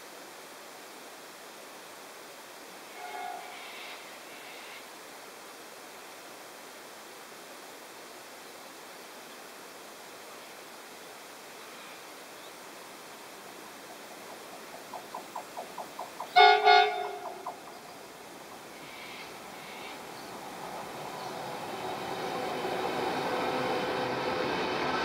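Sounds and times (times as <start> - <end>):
locomotive horn chord: 3.0 - 3.5, 16.4 - 17.4.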